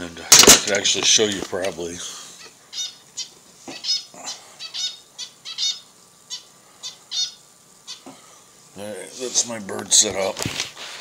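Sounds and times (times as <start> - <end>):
bird chirping: 2.2 - 8.2.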